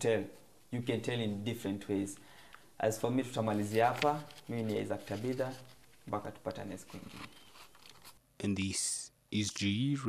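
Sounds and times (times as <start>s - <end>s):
man speaking: 0.0s - 2.2s, 2.8s - 7.3s, 8.4s - 10.0s.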